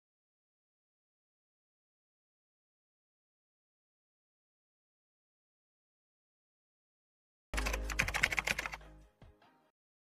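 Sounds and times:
keyboard typing clicks: 0:07.6 - 0:08.8.

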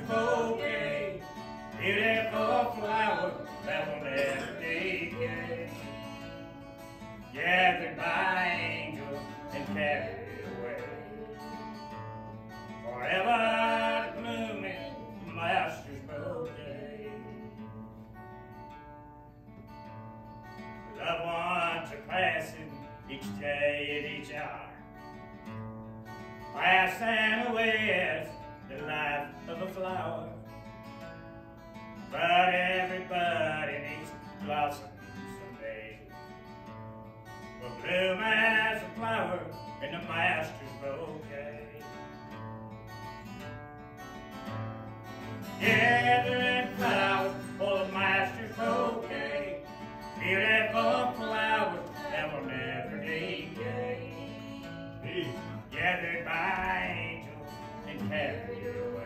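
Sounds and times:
man singing gospel song: 0:00.0 - 0:06.2, 0:07.2 - 0:11.8, 0:12.8 - 0:17.6, 0:20.9 - 0:24.8, 0:26.5 - 0:30.4, 0:32.1 - 0:36.2, 0:37.6 - 0:42.0, 0:45.5 - 0:59.0
strummed acoustic guitar: 0:00.0 - 0:59.0.

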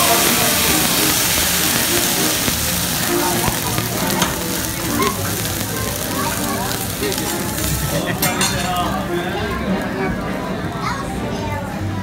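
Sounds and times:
food and oil sizzling on griddle: 0:00.0 - 0:11.6.

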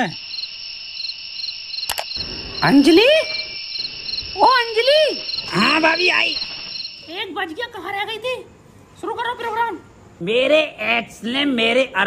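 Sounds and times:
crickets chirping: 0:00.0 - 0:12.0
sharp click: 0:01.8 - 0:02.2.

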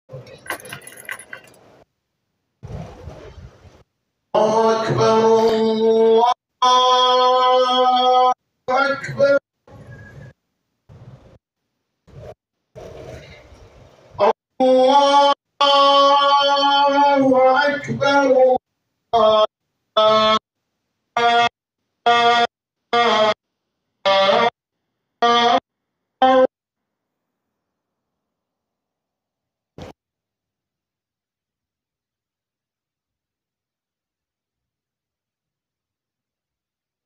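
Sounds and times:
sharp clicks and clinks: 0:00.2 - 0:01.8
man chanting: 0:04.4 - 0:09.4, 0:14.2 - 0:20.4, 0:21.2 - 0:21.5, 0:22.1 - 0:23.4.

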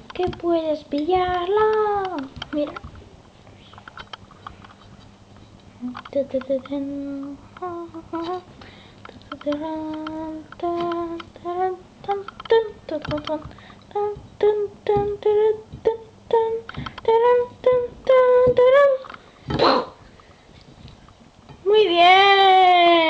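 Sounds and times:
person humming a tune: 0:05.8 - 0:08.6, 0:09.2 - 0:19.8.

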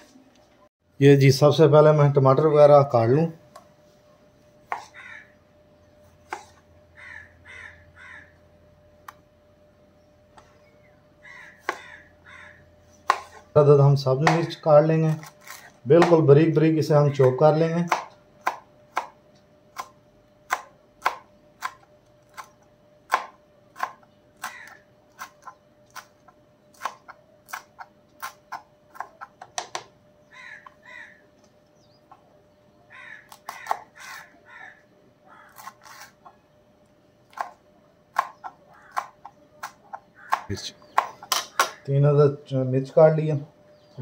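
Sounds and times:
knife chopping on cutting board: 0:13.1 - 0:13.4, 0:14.2 - 0:14.6, 0:17.2 - 0:19.2, 0:23.1 - 0:24.6, 0:37.3 - 0:41.8.

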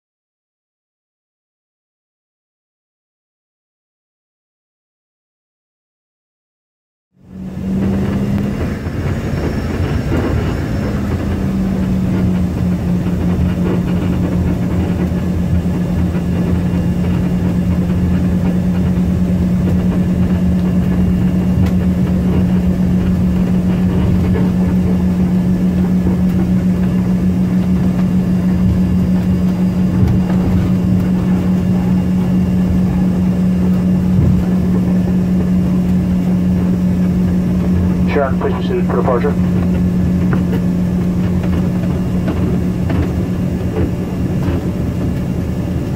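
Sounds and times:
aircraft cabin rumble: 0:07.2 - 0:45.9
jet engines humming: 0:07.2 - 0:45.9.

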